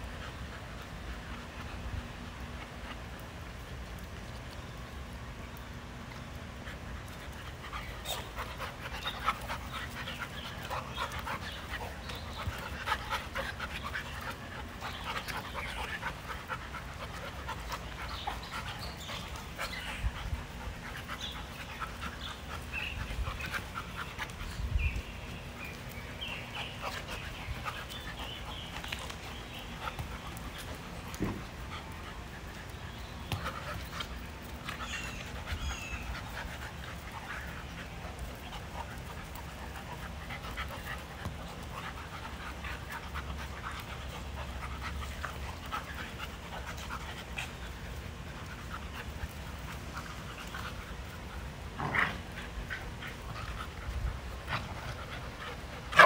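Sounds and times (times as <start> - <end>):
dogs panting: 0.0 - 56.0.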